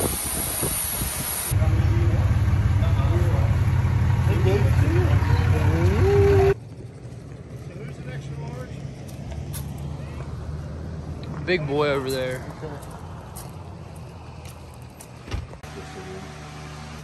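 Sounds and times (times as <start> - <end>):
people talking: 1.5 - 3.6, 4.2 - 6.6, 11.4 - 12.9, 15.7 - 16.3
truck engine idling: 1.5 - 8.3.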